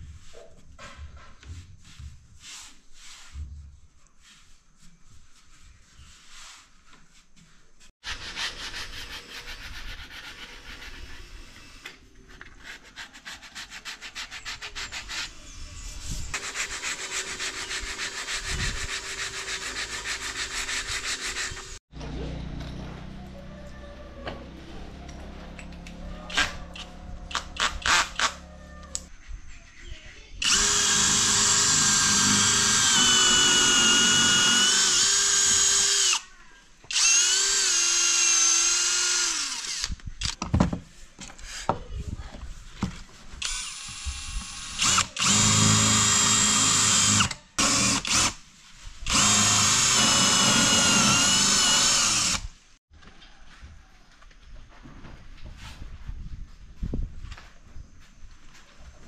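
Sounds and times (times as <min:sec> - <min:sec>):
cordless drill boring into wood: 0:16.4 - 0:21.8, 0:26.3 - 0:28.4, 0:30.4 - 0:36.2, 0:36.9 - 0:40.0, 0:43.4 - 0:48.4, 0:49.0 - 0:52.6.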